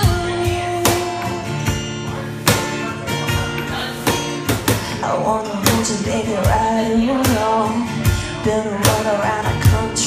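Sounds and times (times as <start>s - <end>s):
cajon beats: 0.0s - 9.9s
acoustic guitar strumming: 0.0s - 10.0s
person singing country song: 0.0s - 10.0s.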